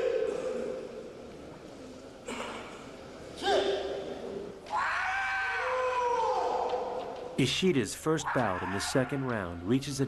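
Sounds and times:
long drawn-out shouts: 0:04.7 - 0:07.0.

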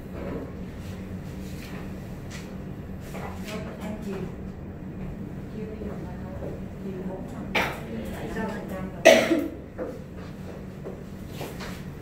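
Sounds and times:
person coughing: 0:09.0 - 0:09.6.

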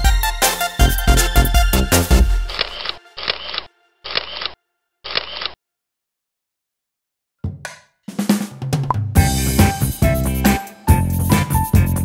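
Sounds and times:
camera shutter clicks: 0:02.5 - 0:05.6.

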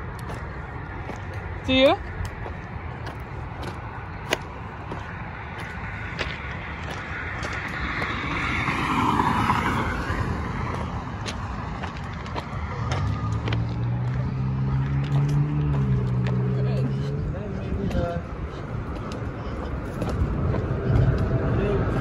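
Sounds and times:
road traffic hum: 0:00.0 - 0:22.0
car passing close by: 0:05.0 - 0:17.3.

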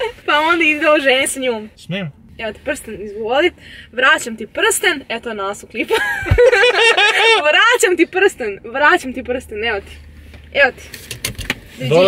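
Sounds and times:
rustling in car seats: 0:08.8 - 0:12.0.

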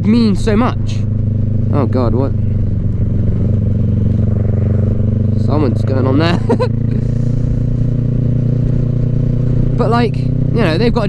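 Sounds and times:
motorcycle engine running: 0:00.0 - 0:11.0.

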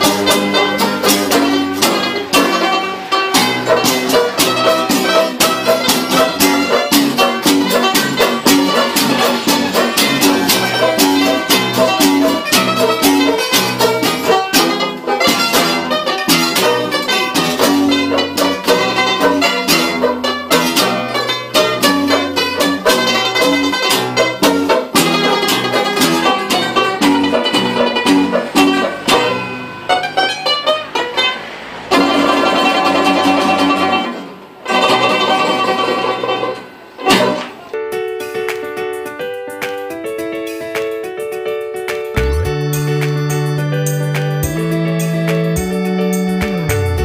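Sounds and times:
string ensemble playing: 0:00.0 - 0:23.9, 0:42.2 - 0:44.3.

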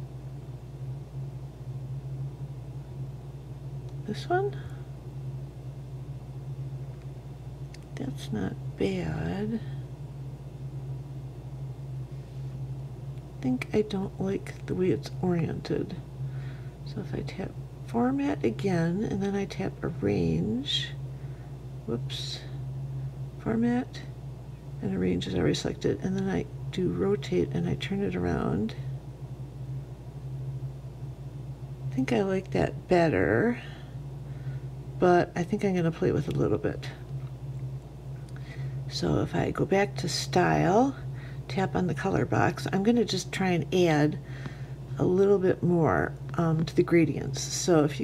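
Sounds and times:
steady low hum: 0:00.0 - 0:48.0.

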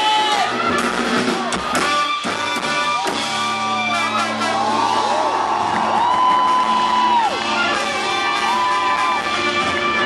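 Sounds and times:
live band with horns and drums: 0:00.0 - 0:10.0
audience cheering and whooping: 0:02.9 - 0:10.0.

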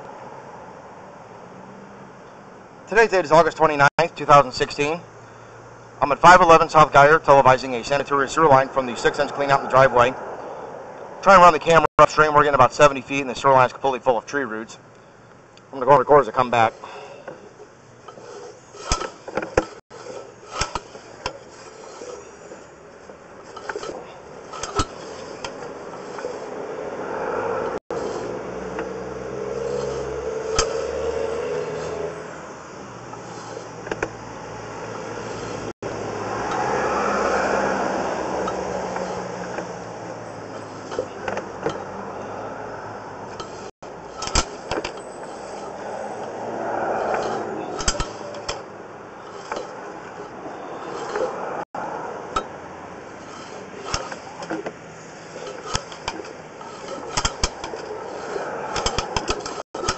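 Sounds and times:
cable clicking and scraping: 0:15.6 - 0:27.0, 0:27.6 - 0:32.2, 0:33.1 - 0:34.2, 0:35.2 - 0:35.7, 0:38.4 - 0:41.9, 0:43.3 - 0:46.4, 0:47.0 - 0:51.7, 0:52.3 - 0:59.9.

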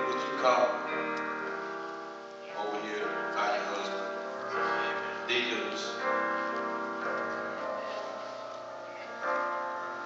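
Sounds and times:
keyboard sustained chords: 0:00.0 - 0:10.0.

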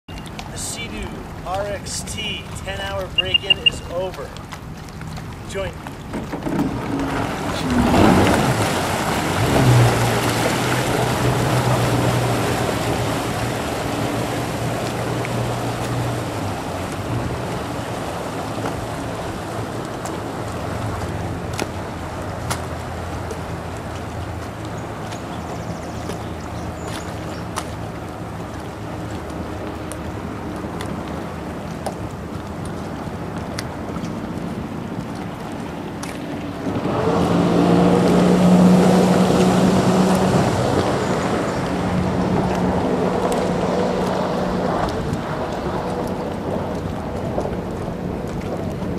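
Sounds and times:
water noise: 0:00.0 - 0:48.9
jet ski engine humming: 0:00.1 - 0:48.9.

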